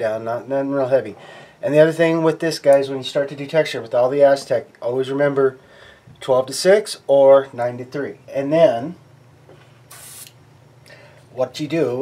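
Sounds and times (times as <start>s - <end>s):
airbrush air hiss: 9.9s - 10.4s.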